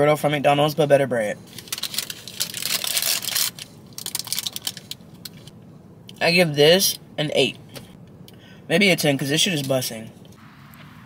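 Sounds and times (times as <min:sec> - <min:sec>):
paper wrapper crinkling: 0:01.5 - 0:05.5.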